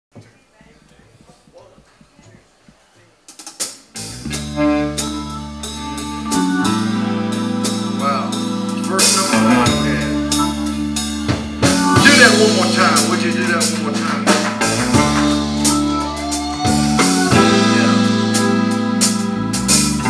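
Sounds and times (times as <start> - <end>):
country band playing: 3.9 - 20.0
sharp drum hits: 11.3 - 15.8.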